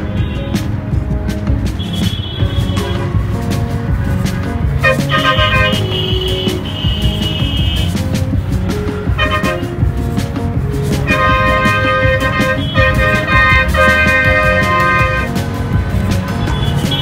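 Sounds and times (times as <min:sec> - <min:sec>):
background music: 0:00.0 - 0:17.0
low traffic rumble: 0:00.0 - 0:17.0
vehicle horns honking: 0:01.8 - 0:03.3, 0:04.8 - 0:08.0, 0:09.1 - 0:09.8, 0:11.0 - 0:15.5, 0:16.4 - 0:17.0.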